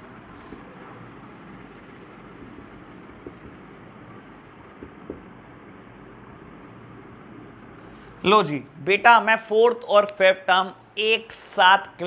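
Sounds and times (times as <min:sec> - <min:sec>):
marker scratching on whiteboard: 0:00.0 - 0:07.9.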